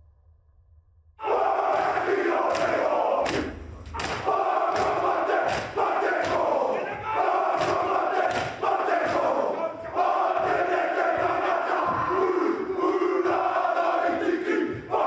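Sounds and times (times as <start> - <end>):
men chanting in unison: 1.2 - 15.0
sharp slaps: 1.7 - 6.6, 7.2 - 9.4.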